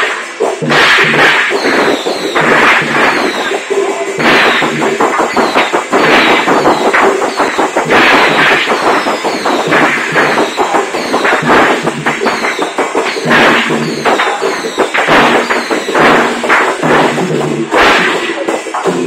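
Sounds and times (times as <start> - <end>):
firecrackers crackling and banging: 0.0 - 19.0
steady musical tones: 1.2 - 19.0.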